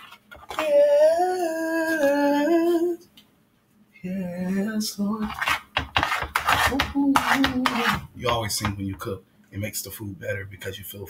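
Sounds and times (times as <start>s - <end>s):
utensil scraping inside a pot: 5.2s - 8.8s.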